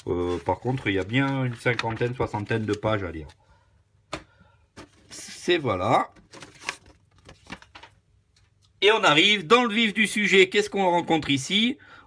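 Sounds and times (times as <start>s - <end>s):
paper rustling and tapping: 0.0s - 3.3s, 6.1s - 8.6s.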